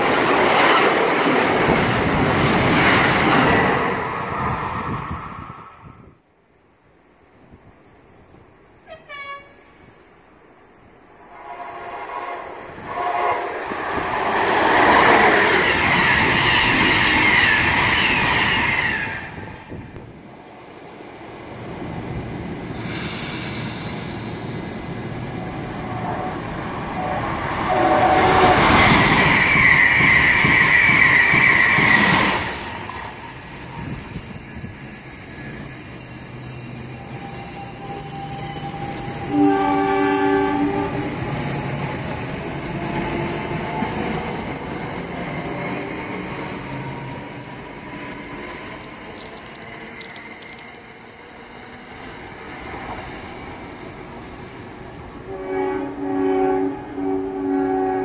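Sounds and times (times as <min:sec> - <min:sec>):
train wheel and rail noise: 0:00.0 - 0:58.0
train horn blasts: 0:08.8 - 0:09.9, 0:11.2 - 0:13.6, 0:25.9 - 0:28.9, 0:38.6 - 0:41.3, 0:55.2 - 0:58.0.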